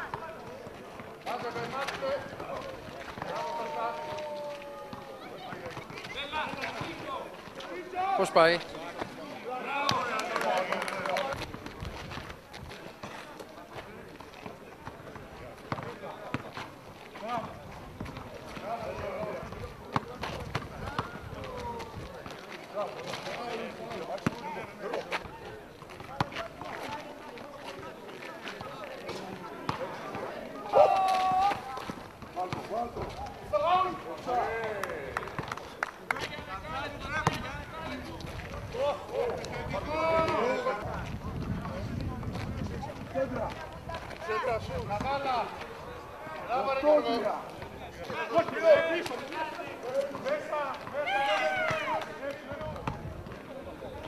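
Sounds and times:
people calling and shouting: 0.0 - 54.0
running footsteps: 0.1 - 29.8.

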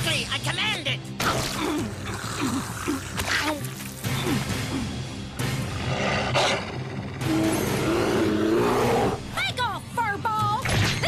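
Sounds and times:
cartoon background music: 0.0 - 11.0
cartoon bear roaring: 5.9 - 9.2.

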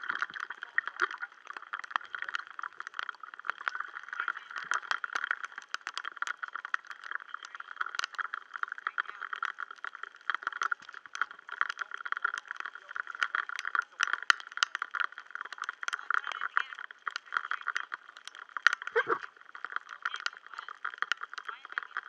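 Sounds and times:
rain falling on water: 0.0 - 22.0.

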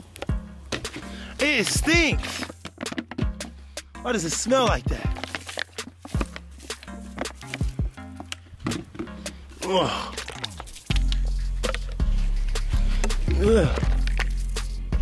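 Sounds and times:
background music with bass line: 0.0 - 15.0
heavy bass: 9.1 - 15.0.

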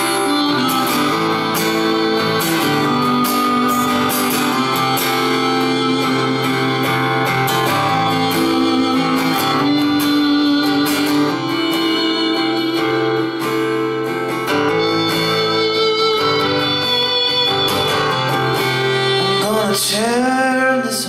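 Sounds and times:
harmonica long held notes: 0.0 - 20.9
acoustic guitar strumming: 0.0 - 21.0.

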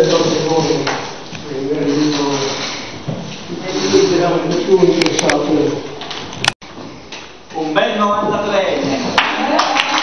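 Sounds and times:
person speaking: 0.0 - 6.0
low room noise: 0.0 - 10.0.

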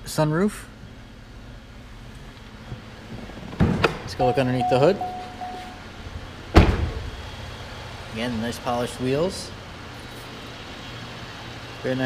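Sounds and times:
car door slamming: 6.5 - 7.2.

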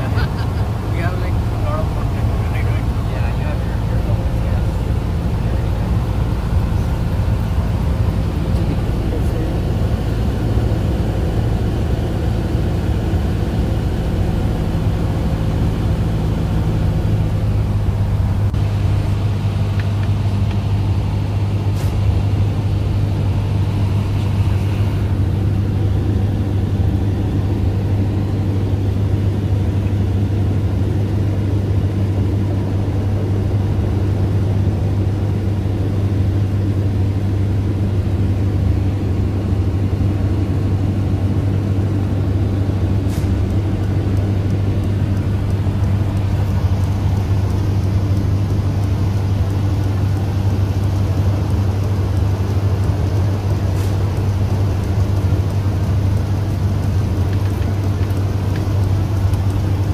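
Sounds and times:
airplane engine and propeller drone: 0.0 - 59.9.

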